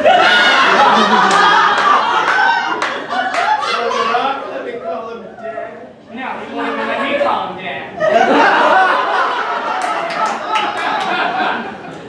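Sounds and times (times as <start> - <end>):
audience laughing: 0.0 - 5.2, 8.0 - 12.0
hand claps: 1.2 - 3.6, 9.8 - 11.3.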